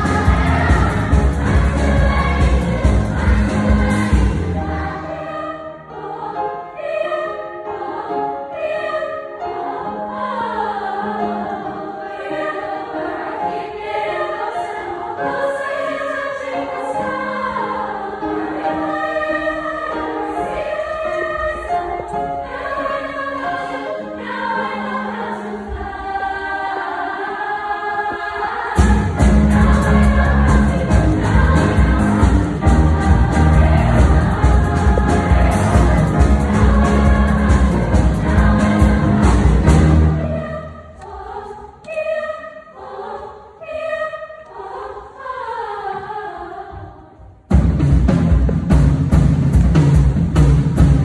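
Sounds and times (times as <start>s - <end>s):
girls' choir singing in harmony: 0.0s - 49.2s
heavy bass: 28.8s - 40.2s.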